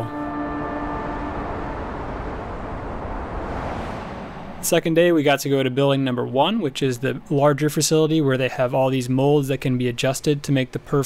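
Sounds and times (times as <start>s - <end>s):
faint held tone: 0.0s - 2.7s
steady rushing noise: 0.6s - 8.3s.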